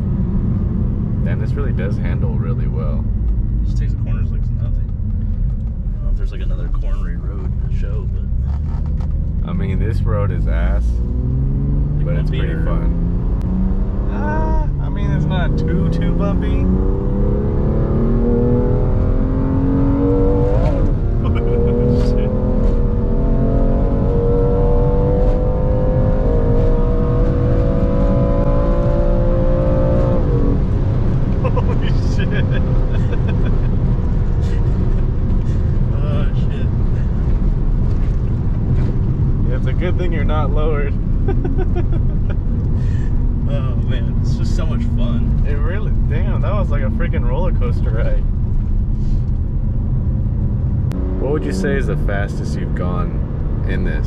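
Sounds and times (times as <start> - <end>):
car engine accelerating: 0.0 - 54.0.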